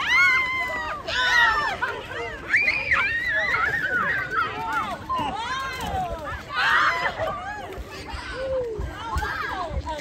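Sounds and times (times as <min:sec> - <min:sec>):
children shouting and squealing: 0:00.0 - 0:10.0.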